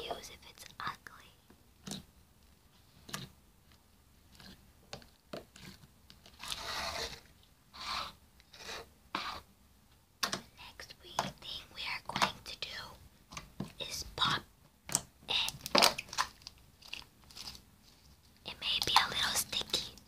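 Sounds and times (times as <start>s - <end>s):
hands squishing slime: 13.3s - 17.7s.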